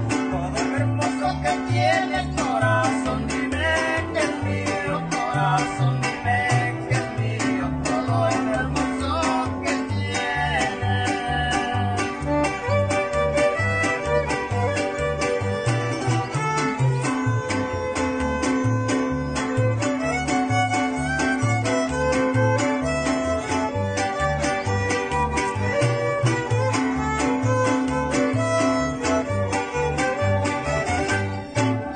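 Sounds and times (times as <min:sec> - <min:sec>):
bass guitar picking bass line: 0:00.0 - 0:31.9
strummed small guitars: 0:00.0 - 0:31.9
violins playing melody: 0:12.0 - 0:31.9.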